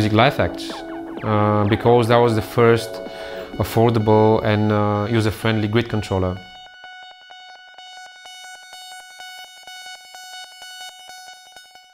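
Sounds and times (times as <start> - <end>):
pulsing high synthesizer tone: 0.0 - 11.9.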